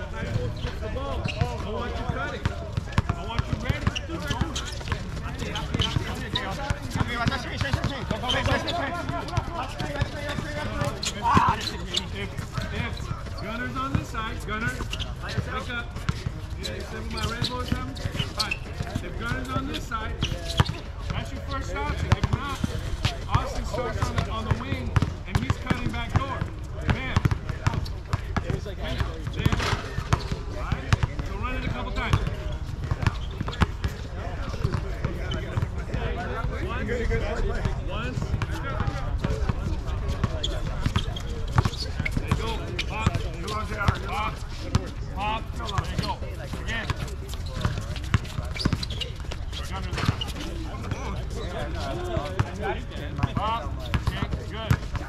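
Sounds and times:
players calling out: 0:00.0 - 0:55.0
basketball bouncing on hard court: 0:01.3 - 0:11.7, 0:24.0 - 0:35.7, 0:53.2 - 0:55.0.

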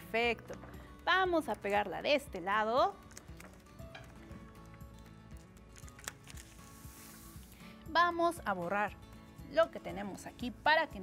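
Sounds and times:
faint background music: 0:00.0 - 0:11.0
paper rustling: 0:05.3 - 0:07.6.

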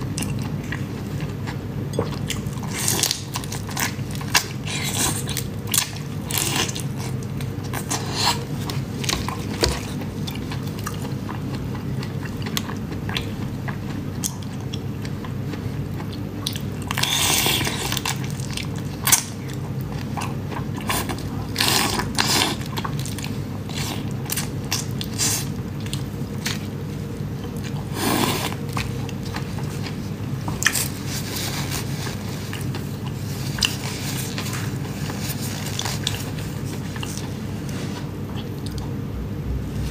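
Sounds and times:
steady low hum: 0:00.0 - 0:39.9
wet chewing and sucking: 0:00.2 - 0:38.9.

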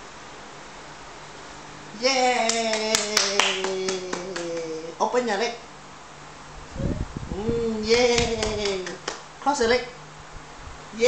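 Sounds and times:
person cheering yay: 0:02.0 - 0:05.0
hand clapping: 0:02.4 - 0:04.9, 0:08.1 - 0:09.3.

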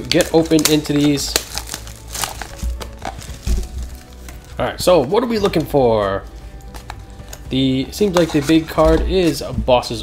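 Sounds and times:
foil packs crinkling: 0:00.0 - 0:09.5
faint background music: 0:00.0 - 0:10.0.

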